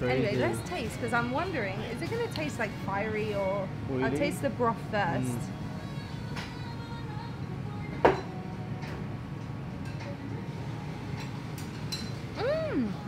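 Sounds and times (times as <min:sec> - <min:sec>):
low restaurant hum: 0:00.0 - 0:13.0
soft background music: 0:00.0 - 0:13.0
person murmuring mm: 0:12.4 - 0:13.0.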